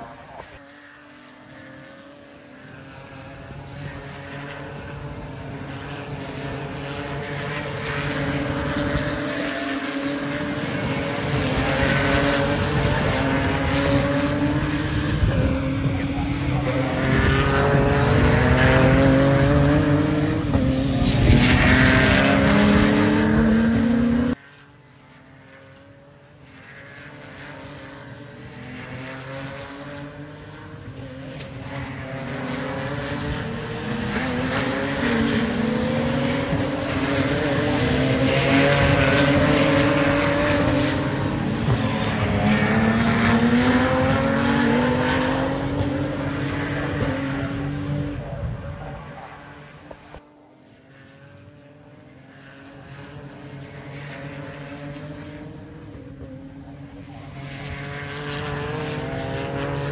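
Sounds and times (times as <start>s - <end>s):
race cars accelerating past: 0.0s - 59.9s.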